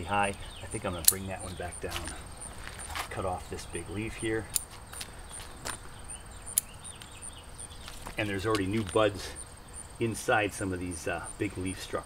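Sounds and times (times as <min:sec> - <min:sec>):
crickets chirping: 0:00.0 - 0:12.0
sharp clicks: 0:00.3 - 0:02.1, 0:04.4 - 0:05.9, 0:06.5 - 0:07.2.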